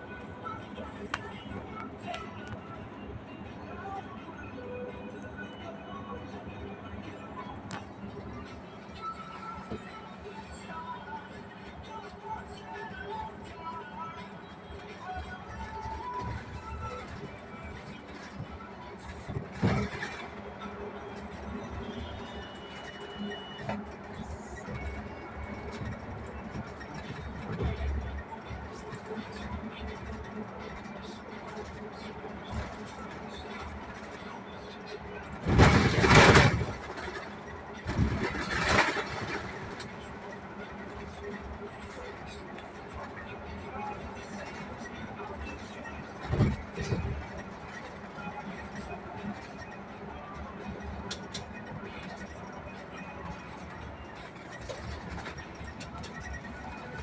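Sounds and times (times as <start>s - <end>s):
bus engine and road noise: 0.0s - 57.0s.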